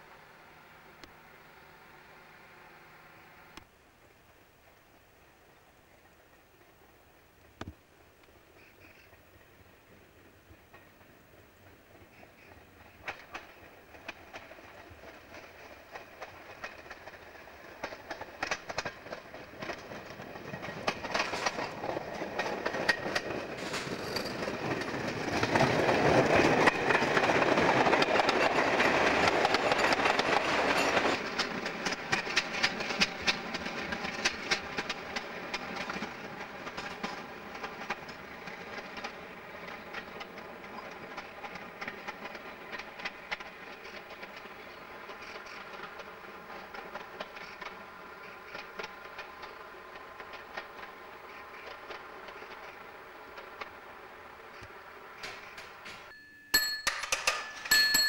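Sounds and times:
diesel train passing: 0.0s - 3.6s, 4.3s - 56.1s
wheels clicking over rail joints: 9.9s - 58.0s.

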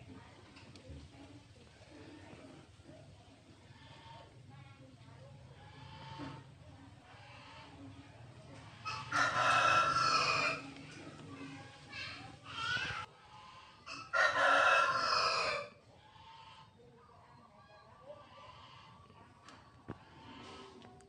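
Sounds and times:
rooster crowing: 8.9s - 10.6s, 13.9s - 15.7s.

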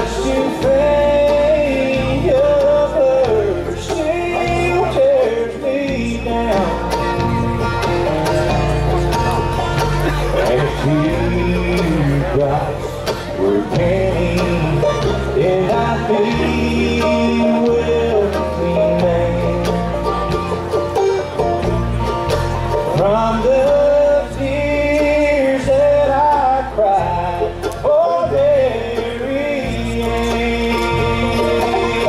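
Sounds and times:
acoustic guitars: 0.0s - 32.0s
banjo: 0.0s - 32.0s
bluegrass band playing: 0.0s - 32.0s
mandolin: 0.0s - 32.0s
picked melody notes: 0.0s - 32.0s
steady low bass line: 0.0s - 32.0s.

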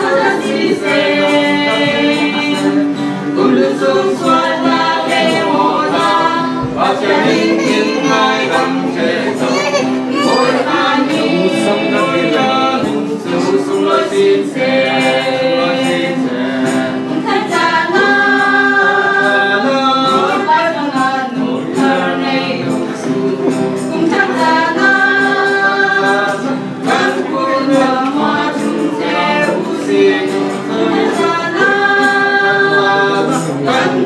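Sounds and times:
family group singing a hymn: 0.0s - 34.0s.

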